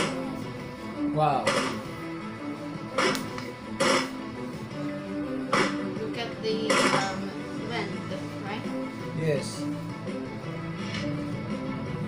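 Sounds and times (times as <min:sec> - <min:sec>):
background music: 0:00.0 - 0:12.0
rifle shots: 0:06.7 - 0:07.2.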